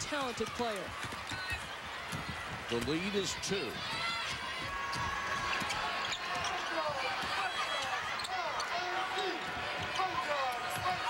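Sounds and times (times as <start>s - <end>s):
arena crowd noise: 0.0s - 11.0s
sneakers squeaking: 1.0s - 11.0s.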